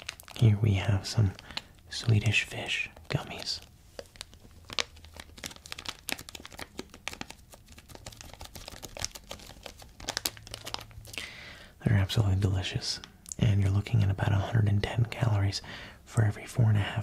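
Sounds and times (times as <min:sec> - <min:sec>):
plastic bag crinkling: 0:00.0 - 0:11.3.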